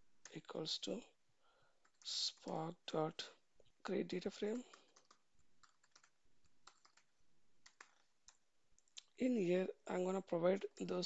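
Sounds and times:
faint keyboard typing: 1.8 - 2.7, 4.2 - 9.2.

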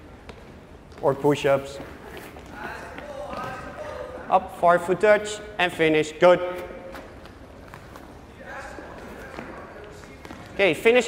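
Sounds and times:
soccer ball touches: 6.5 - 10.8.

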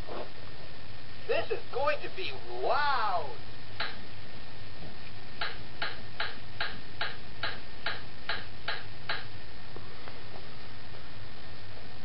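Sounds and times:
toy hammer taps: 5.4 - 9.3.

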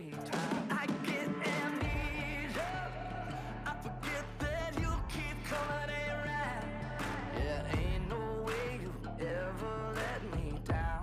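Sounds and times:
pop song with band: 0.0 - 11.0
bass: 1.8 - 11.0.

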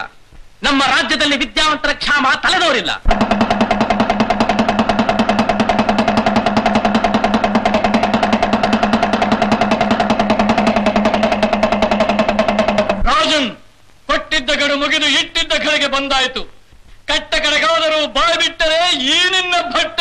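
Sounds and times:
hand drum fast roll: 3.1 - 13.2.

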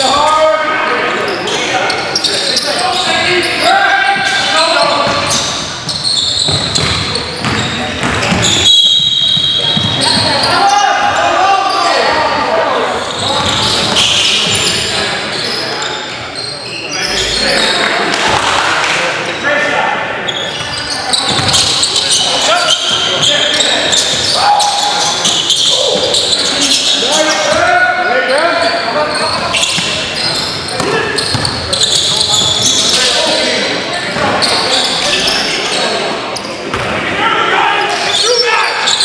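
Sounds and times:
players calling out: 0.0 - 39.0
basketball bouncing on wooden floor: 6.4 - 8.5.

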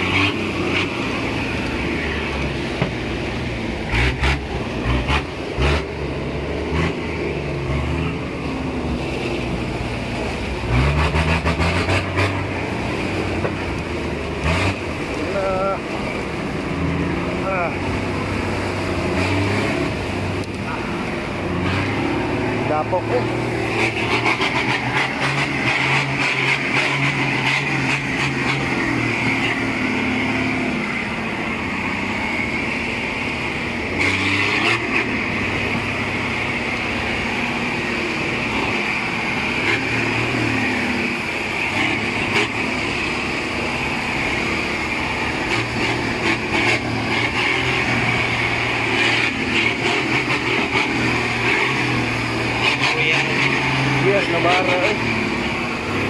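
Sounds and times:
pickup engine pulling under load: 0.0 - 56.0
vehicles knocking and rattling: 0.0 - 56.0.

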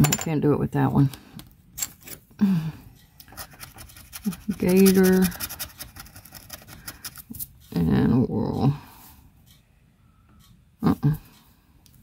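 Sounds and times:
scratcher scraping a lottery ticket: 3.3 - 7.4.

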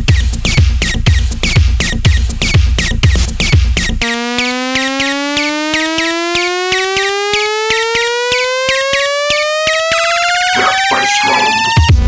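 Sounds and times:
electronic beat: 0.0 - 12.0
rising synth tone: 4.0 - 11.9.

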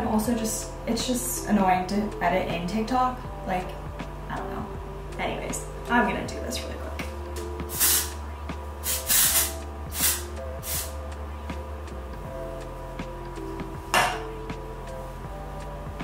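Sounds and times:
background music with bass: 0.0 - 16.0
aerosol spray bursts: 7.7 - 8.2, 8.8 - 11.0.

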